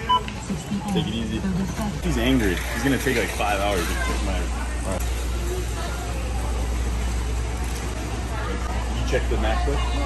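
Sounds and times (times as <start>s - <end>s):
store background rumble and hiss: 0.0s - 10.0s.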